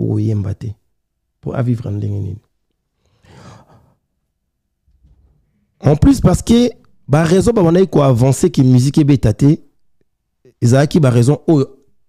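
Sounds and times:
man speaking: 1.4s - 2.5s, 5.8s - 9.7s, 10.5s - 11.8s
man breathing: 3.0s - 4.1s.

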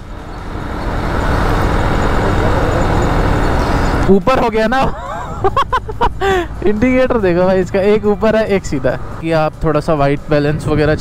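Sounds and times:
wind and road rush: 0.0s - 11.0s.

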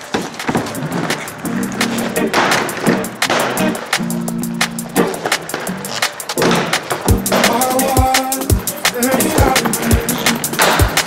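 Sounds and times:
electronic music: 0.0s - 11.0s
skate wheels rolling on concrete: 0.0s - 11.0s
skates grinding along ledges: 0.0s - 11.0s.

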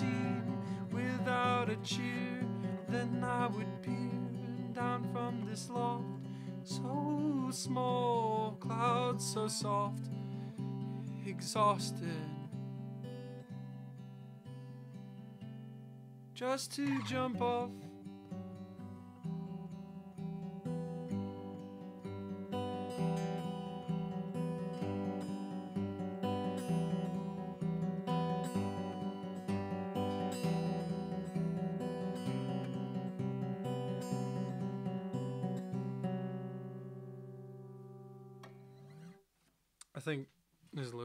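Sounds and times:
acoustic guitar picked and strummed: 0.0s - 40.2s.

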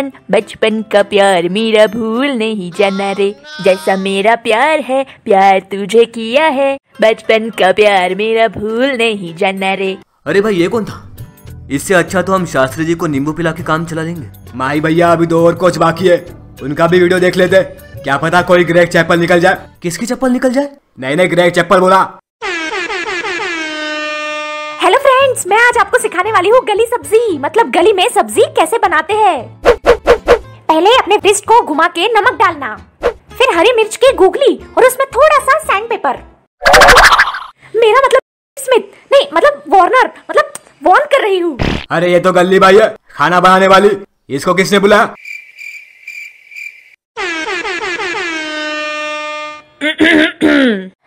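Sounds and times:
horn blast: 22.4s - 24.8s, 47.2s - 49.8s
cricket chirping: 45.2s - 47.0s
brief cough: 49.8s - 50.9s.

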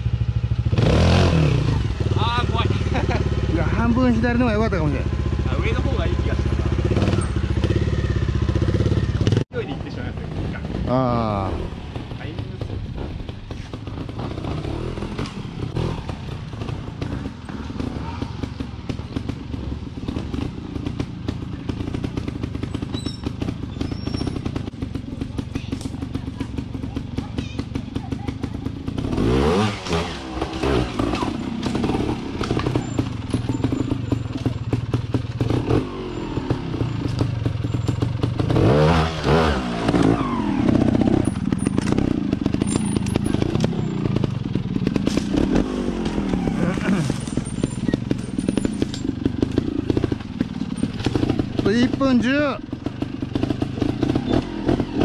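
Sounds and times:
motorcycle engine idling and revving: 0.0s - 55.0s.

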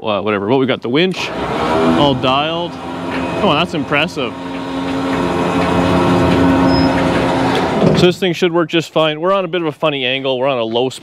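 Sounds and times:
electric winch whining: 1.2s - 8.1s.

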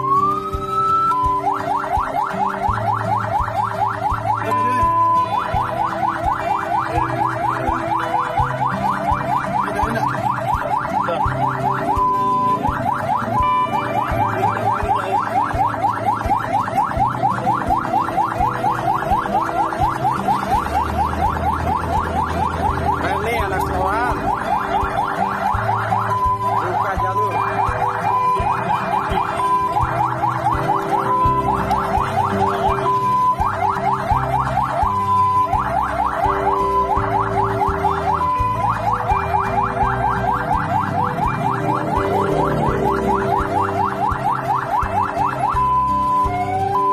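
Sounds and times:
fire engine siren yelping: 0.0s - 46.9s.

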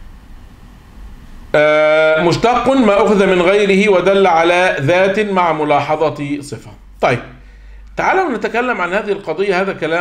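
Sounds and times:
low room noise: 0.0s - 10.0s
man speaking: 1.6s - 7.4s, 8.0s - 10.0s.

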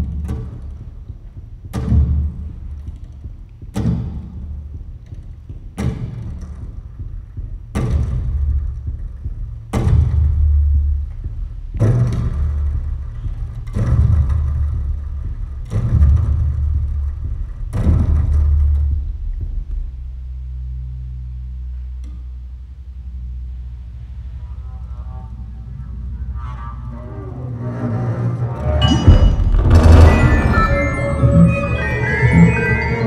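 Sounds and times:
double bass low notes: 0.0s - 33.0s.

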